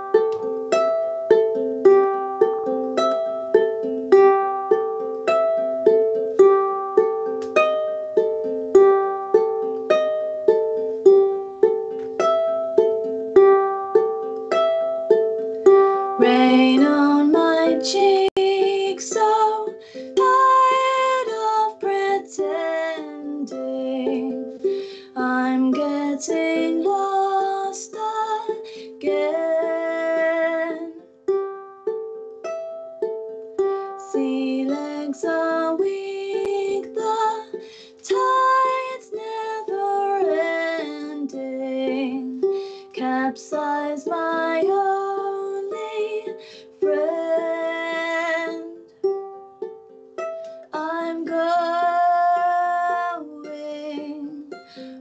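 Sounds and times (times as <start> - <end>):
ukulele strumming: 0.0 - 55.0
woman singing: 16.0 - 31.1, 33.9 - 48.9, 50.6 - 55.0.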